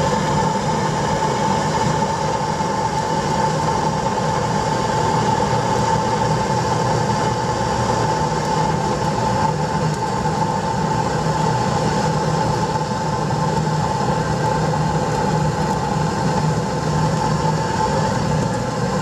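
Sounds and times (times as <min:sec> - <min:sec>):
air blower hum: 0:00.0 - 0:19.0.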